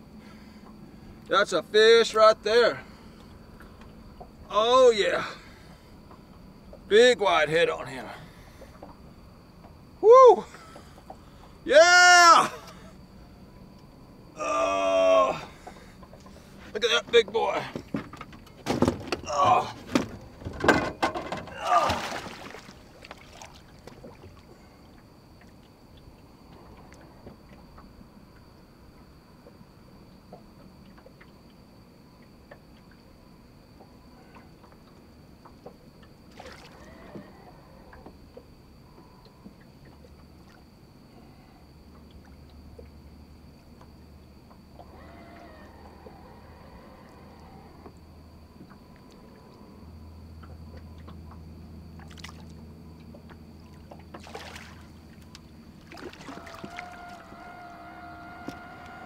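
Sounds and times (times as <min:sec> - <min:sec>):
water sloshing and lapping: 0:15.3 - 0:59.0
water splashing: 0:21.5 - 0:24.5, 0:36.2 - 0:37.0, 0:52.0 - 0:52.5, 0:53.7 - 0:57.4.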